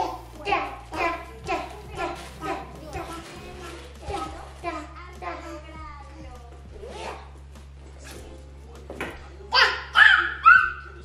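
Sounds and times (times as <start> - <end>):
baby squealing: 9.6 - 11.0.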